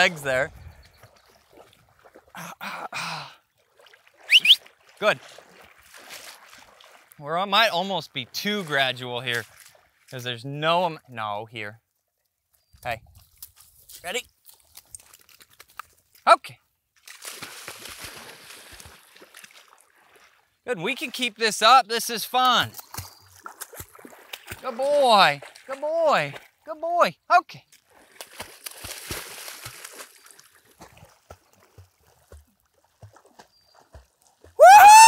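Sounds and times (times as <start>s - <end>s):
dog splashing in water: 0.8s - 2.3s, 3.6s - 7.2s, 17.0s - 20.4s, 22.7s - 26.6s, 27.8s - 34.6s
person shouting: 34.6s - 35.0s.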